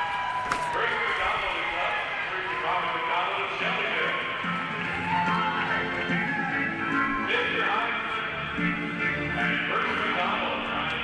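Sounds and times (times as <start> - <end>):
man speaking indistinctly: 6.6 - 8.6.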